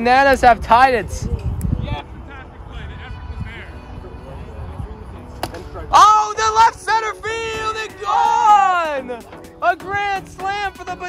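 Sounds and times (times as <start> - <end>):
plastic bat hitting ball: 5.4 - 5.7.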